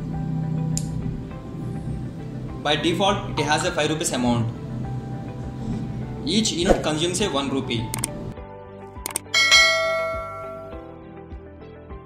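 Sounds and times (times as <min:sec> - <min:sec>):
quick clicks: 0:07.9 - 0:08.2, 0:09.0 - 0:09.3
bright bell ding: 0:09.3 - 0:10.9.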